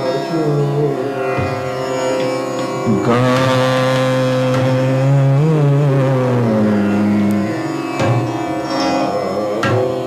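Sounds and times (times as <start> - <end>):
man singing a long note: 0.0 - 1.6, 2.8 - 7.6, 9.0 - 10.0
tanpura drone: 0.0 - 10.0.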